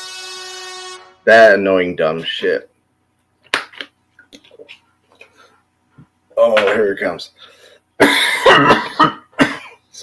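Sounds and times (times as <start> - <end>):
man coughing hard: 8.0 - 9.8.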